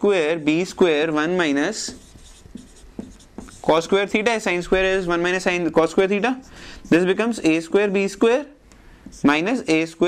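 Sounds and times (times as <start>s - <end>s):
marker writing on whiteboard: 0.7s - 7.6s, 9.0s - 9.8s
man's voice: 3.6s - 8.6s, 9.2s - 10.0s.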